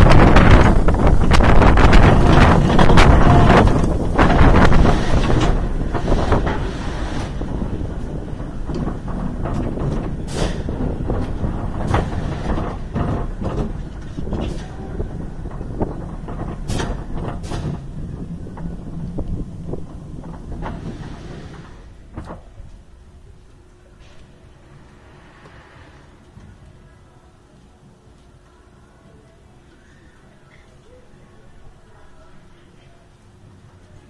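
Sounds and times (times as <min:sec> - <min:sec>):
wind and track rumble: 0:00.0 - 0:28.7
coaster train clunks and clicks: 0:00.0 - 0:29.5.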